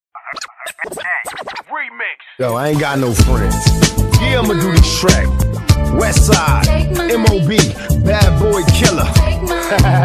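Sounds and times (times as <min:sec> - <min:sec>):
turntable scratching: 0:00.2 - 0:01.9.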